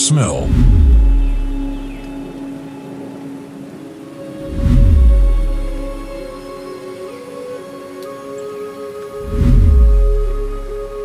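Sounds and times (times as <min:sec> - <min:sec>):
faint low rumble: 0:00.0 - 0:02.4, 0:04.5 - 0:06.4
low drone music: 0:00.0 - 0:11.0.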